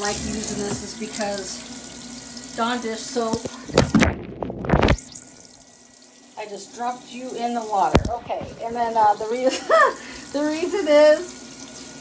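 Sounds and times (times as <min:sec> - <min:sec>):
faint steady water sound: 0:00.0 - 0:03.9, 0:05.0 - 0:12.0.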